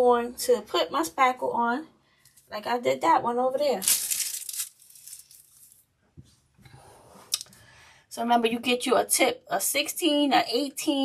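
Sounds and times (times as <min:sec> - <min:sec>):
plastic piping bag rustling: 0:03.7 - 0:05.9.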